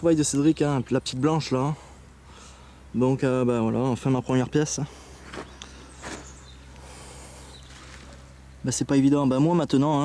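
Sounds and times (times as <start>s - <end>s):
steady low hum: 0.0s - 10.0s
footsteps on dry soil: 4.9s - 8.4s.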